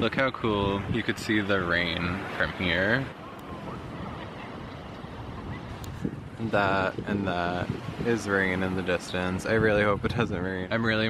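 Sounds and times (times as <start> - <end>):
ocean surf breaking: 0.0 - 11.0
wind noise on microphone: 0.0 - 11.0.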